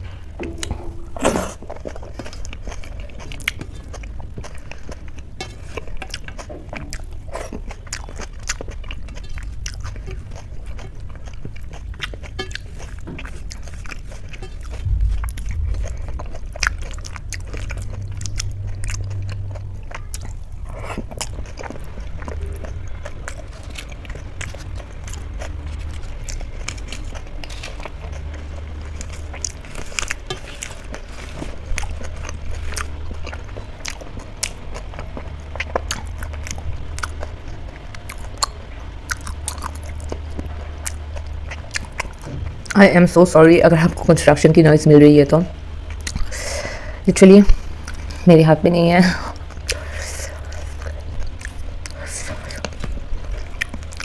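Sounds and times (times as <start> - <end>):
person chewing with wet mouth sounds: 0.0 - 44.1, 45.1 - 54.0
low rumble: 0.0 - 54.0.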